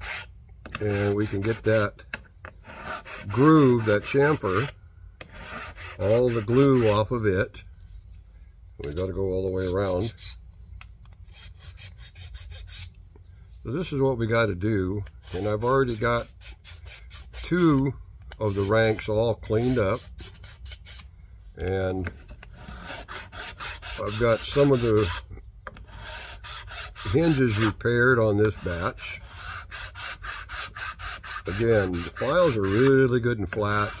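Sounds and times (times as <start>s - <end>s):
file scraping wood: 0.0s - 7.2s, 8.8s - 10.4s, 11.2s - 13.0s, 15.0s - 34.0s.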